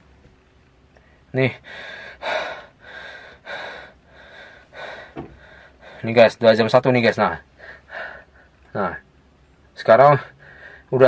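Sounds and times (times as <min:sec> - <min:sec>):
man breathing heavily: 0:01.0 - 0:06.2, 0:07.5 - 0:08.7, 0:10.3 - 0:10.9.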